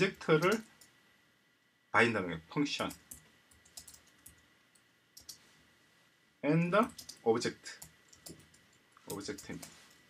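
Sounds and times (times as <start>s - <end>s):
computer keyboard keystrokes: 0.4s - 0.9s, 2.8s - 4.4s, 5.2s - 5.4s, 6.8s - 7.2s, 7.8s - 9.7s.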